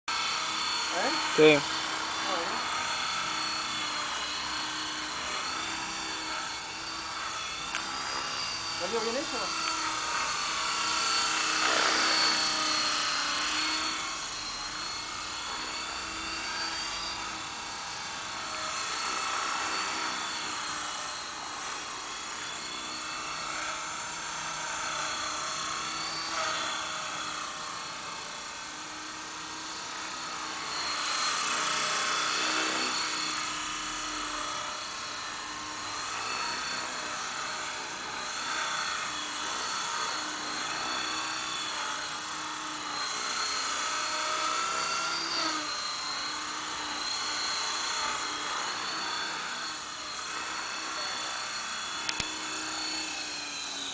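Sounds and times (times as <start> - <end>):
model helicopter motor whine: 0.1 - 53.9
rotor blades whirring: 0.1 - 53.9.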